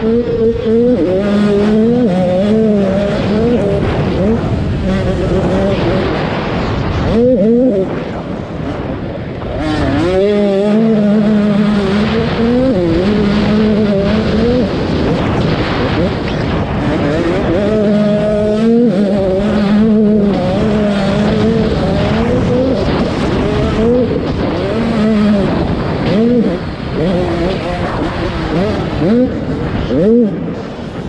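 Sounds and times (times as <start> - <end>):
motocross bike engine revving: 0.0 - 31.0
wind rush: 0.0 - 31.0.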